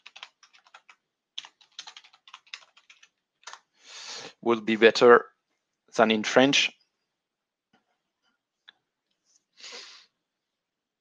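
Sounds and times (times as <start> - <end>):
typing on computer keyboard: 0.0 - 3.7.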